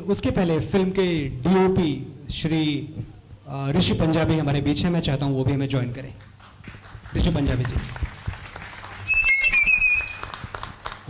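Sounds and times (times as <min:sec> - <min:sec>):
hand claps: 0:06.2 - 0:11.0
high-pitched whistle: 0:09.0 - 0:10.4.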